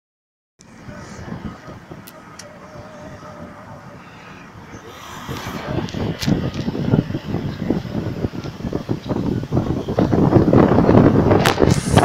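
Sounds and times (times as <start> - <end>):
car engine and tyre rumble: 0.6 - 12.0.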